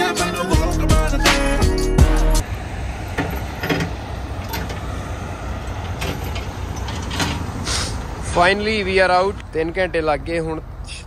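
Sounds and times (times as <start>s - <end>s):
diesel engine rumbling: 0.0s - 11.0s
short hisses: 7.6s - 8.1s.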